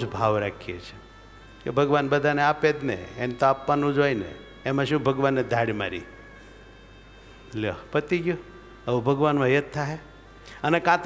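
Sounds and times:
man talking amplified: 0.0 - 1.0, 1.6 - 6.0, 7.5 - 10.0, 10.6 - 11.0
faint steady hum: 0.0 - 11.0.

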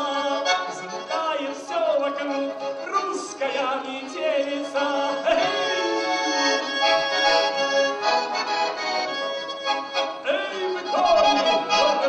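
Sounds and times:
button accordion folk melody: 0.0 - 12.0.

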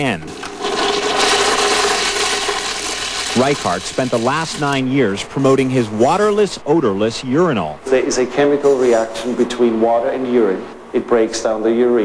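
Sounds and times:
urinal flushing water: 0.0 - 4.9.

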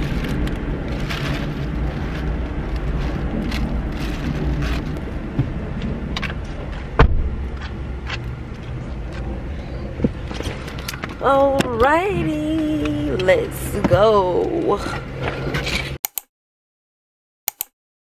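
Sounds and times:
bags rustling: 0.0 - 5.0
steady low rumble: 0.0 - 15.9.

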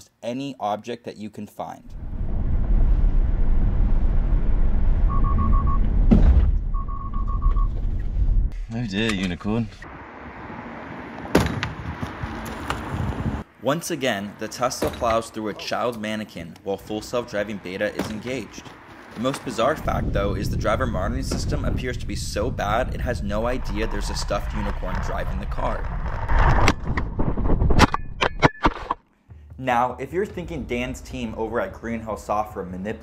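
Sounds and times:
car rolling over road: 1.9 - 6.7, 17.0 - 27.8
sharp clacks on road: 11.0 - 13.4
car striking mannequin: 11.2 - 12.9
heavy rushing scrape: 17.0 - 27.8.

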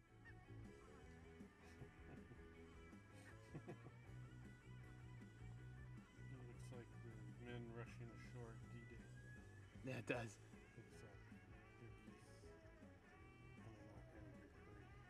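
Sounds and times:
faint guitar music: 0.0 - 15.0.

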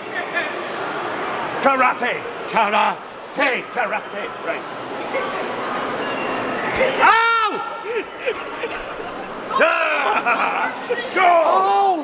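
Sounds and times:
hall chatter: 0.0 - 12.0
person laughing: 7.8 - 10.9.

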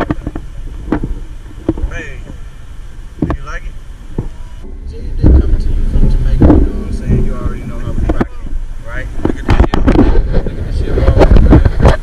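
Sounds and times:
indistinct voices: 0.0 - 12.0
wind rumble on microphone: 0.0 - 12.0.

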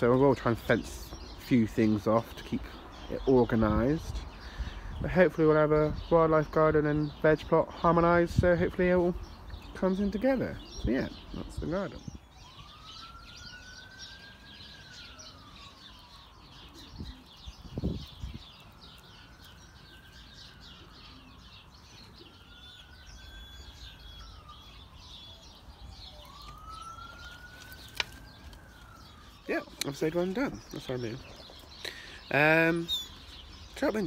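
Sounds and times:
small birds chirping: 0.0 - 34.0
faint siren wailing: 9.1 - 34.0.

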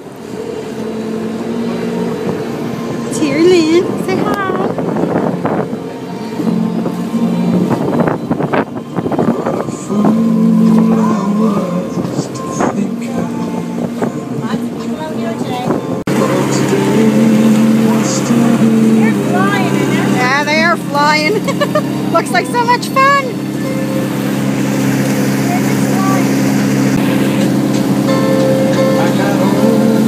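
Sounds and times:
motorboat engine drone: 0.0 - 30.0
wind and water rushing: 0.0 - 30.0.

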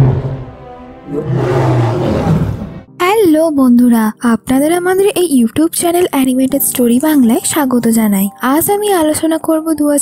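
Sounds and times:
lion roaring: 0.0 - 2.9
film music: 0.0 - 10.0.

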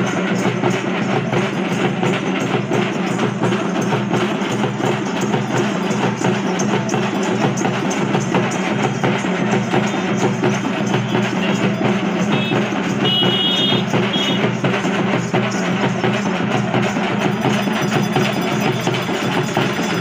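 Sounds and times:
frame drum and barrel drum: 0.0 - 20.0.

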